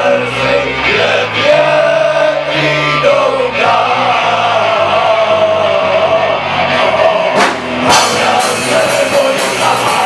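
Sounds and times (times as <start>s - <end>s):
live rock band playing: 0.0s - 10.0s
sharp drum or cymbal hits: 7.4s - 10.0s.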